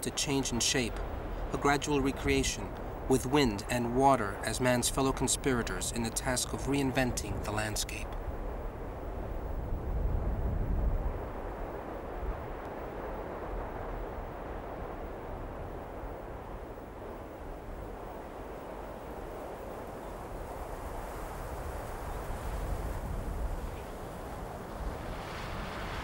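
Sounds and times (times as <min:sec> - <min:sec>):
wind rumble: 0:00.0 - 0:26.0.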